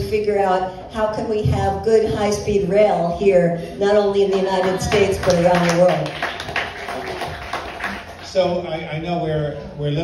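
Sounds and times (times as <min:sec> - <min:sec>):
audience clapping: 0:04.3 - 0:08.6.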